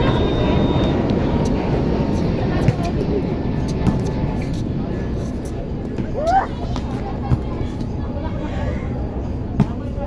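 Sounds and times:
faint voices: 0.0 - 10.0
steady low rumble: 0.0 - 10.0.

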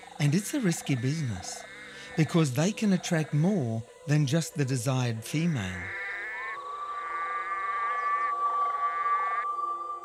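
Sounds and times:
frog calling: 0.0 - 10.0
steady high tone: 5.5 - 10.0.

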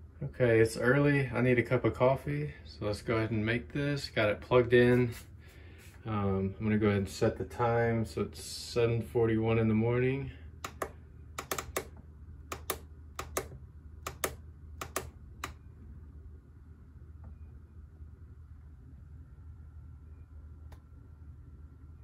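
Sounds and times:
faint low hum: 0.0 - 22.0
plastic buttons clicking: 10.6 - 15.6.

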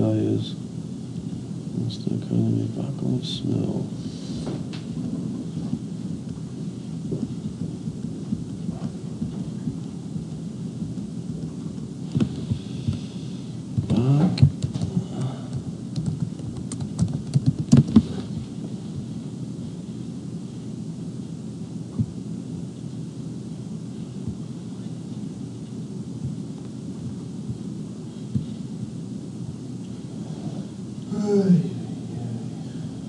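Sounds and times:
low room noise rumble: 0.0 - 33.0
computer keyboard typing: 16.0 - 18.0.

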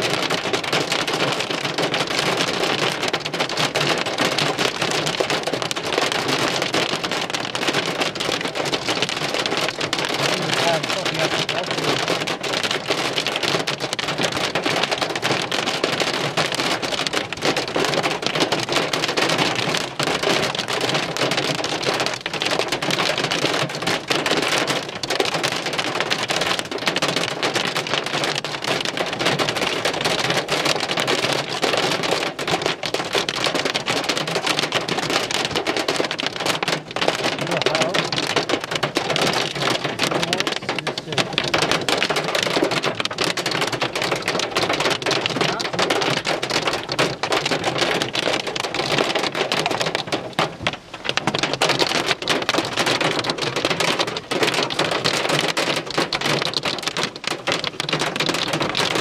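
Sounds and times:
heavy rain and hail falling: 0.0 - 59.0.

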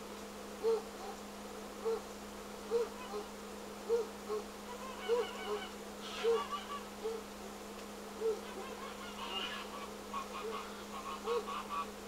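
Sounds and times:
geese honking: 3.9 - 7.2, 8.2 - 12.0.

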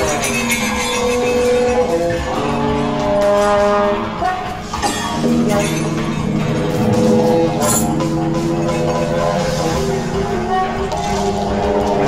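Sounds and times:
held horn-like chord: 1.6 - 12.0.

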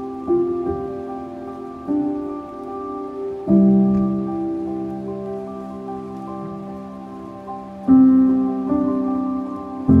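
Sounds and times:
soft slow piano music: 0.0 - 10.0.

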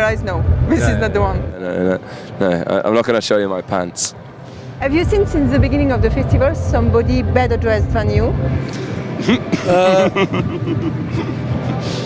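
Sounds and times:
steady low rumble: 0.0 - 1.6, 4.2 - 11.9
faint music: 0.0 - 12.0
man chuckling softly: 9.2 - 11.8.

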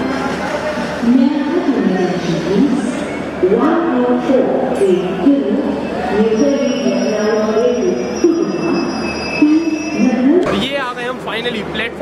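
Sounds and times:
train wheels squealing on rails: 4.8 - 10.3.

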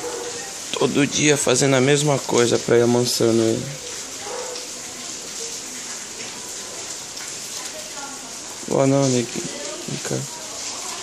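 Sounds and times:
hiss of falling water: 0.0 - 11.0.

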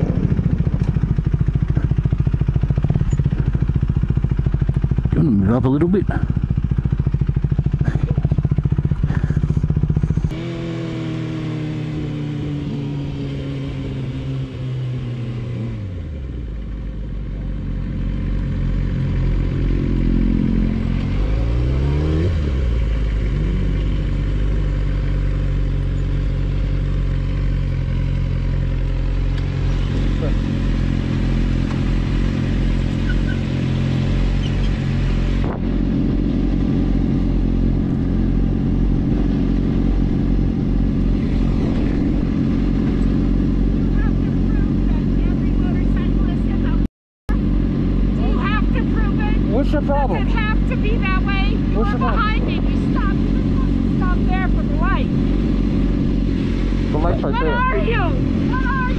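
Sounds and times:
motorcycle engine revving and idling: 0.0 - 58.9.

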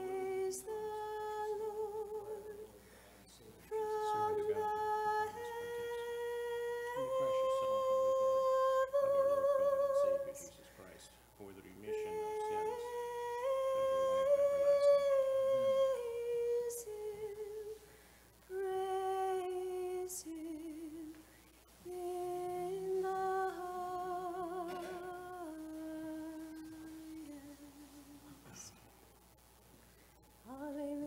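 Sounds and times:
high voice chanting a hymn: 3.6 - 10.6, 21.9 - 27.5.

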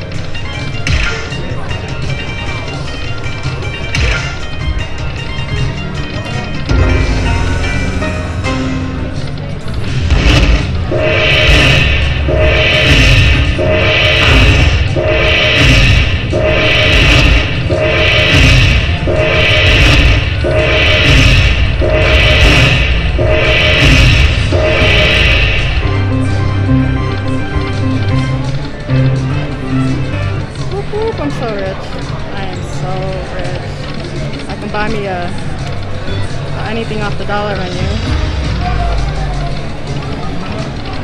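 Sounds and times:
slot machine chime tune: 1.4 - 9.6
low rumble: 6.7 - 35.9.

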